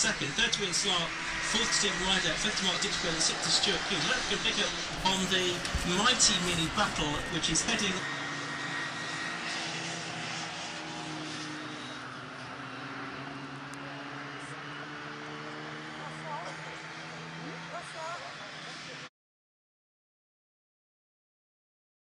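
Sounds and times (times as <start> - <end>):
race car engines droning: 0.0 - 19.1.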